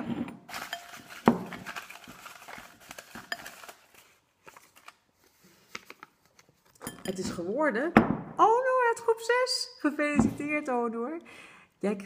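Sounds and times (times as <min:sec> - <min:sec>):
paper slips rustling: 0:00.5 - 0:06.8.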